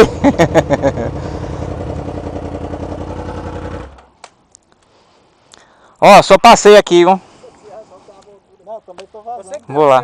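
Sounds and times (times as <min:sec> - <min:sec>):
motorcycle engine idling: 0:00.1 - 0:04.1.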